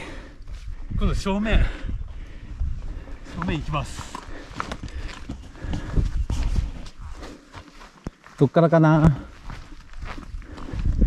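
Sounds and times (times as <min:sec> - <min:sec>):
footsteps on dirt path: 0:01.9 - 0:11.0.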